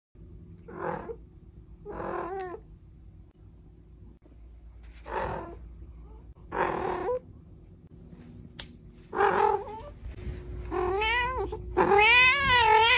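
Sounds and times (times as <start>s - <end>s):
cat meowing: 10.8s - 12.9s.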